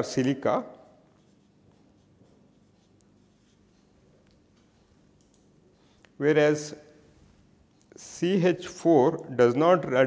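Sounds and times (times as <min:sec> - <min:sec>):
marker scratching on paper: 0:01.0 - 0:04.0.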